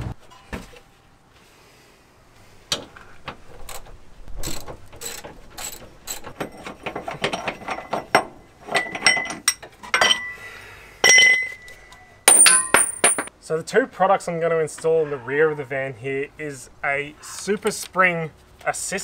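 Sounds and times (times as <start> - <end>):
ringing metal clinks: 11.0 - 13.3.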